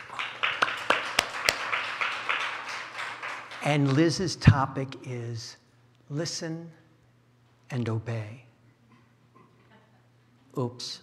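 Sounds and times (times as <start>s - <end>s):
sharp distinct claps: 0.0s - 4.0s
audience clapping: 0.0s - 4.2s.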